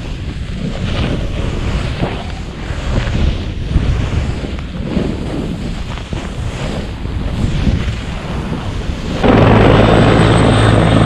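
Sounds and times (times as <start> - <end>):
wind rushing over microphone: 0.0 - 11.0
low hum: 9.0 - 11.0.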